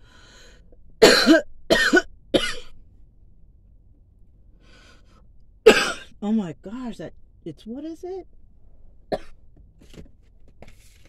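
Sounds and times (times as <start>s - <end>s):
woman coughing: 1.0s - 2.7s, 5.7s - 6.1s, 9.1s - 9.3s.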